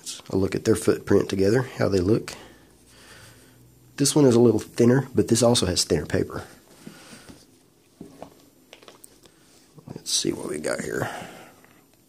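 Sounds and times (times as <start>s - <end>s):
soft rustling: 5.9s - 11.6s.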